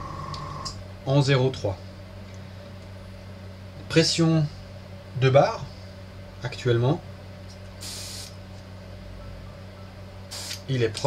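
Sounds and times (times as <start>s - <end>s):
steady low hum: 0.0s - 11.0s
airbrush air hiss: 7.8s - 8.4s, 10.3s - 10.6s.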